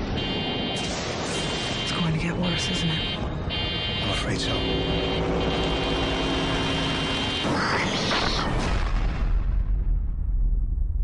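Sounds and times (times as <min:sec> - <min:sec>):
droning tone: 0:00.0 - 0:08.2.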